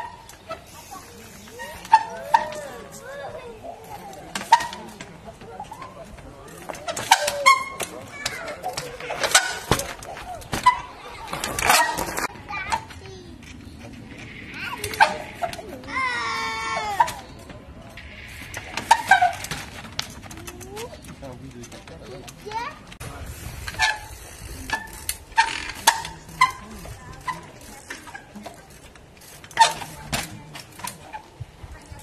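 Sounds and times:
children's voices: 0.0 - 21.2, 22.2 - 23.0, 25.6 - 32.0.

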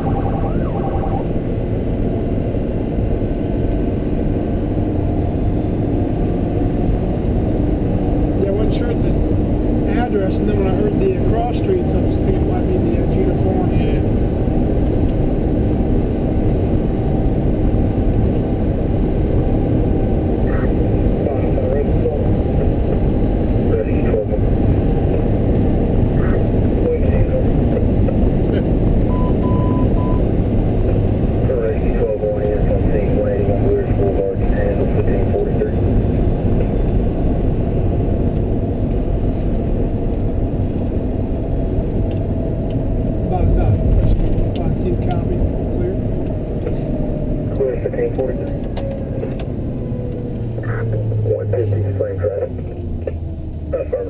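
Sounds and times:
diesel engine and road rumble: 0.0 - 54.0.

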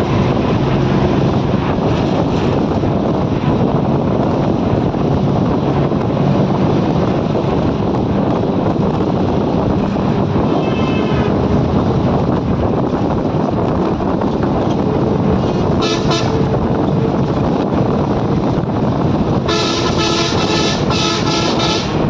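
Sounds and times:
moving train running noise: 0.0 - 22.0
chord-like horn blasts: 15.8 - 16.6, 19.5 - 22.0
short horn toot: 19.5 - 22.0.

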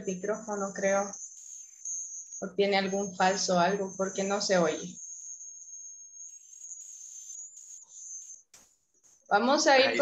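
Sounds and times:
high-pitched microphone whine: 0.0 - 10.0.

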